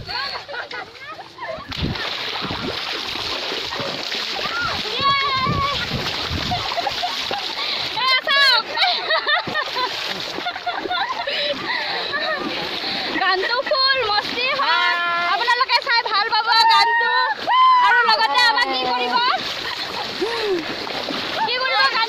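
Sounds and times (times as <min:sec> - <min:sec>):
splashing in muddy water: 0:00.0 - 0:22.0.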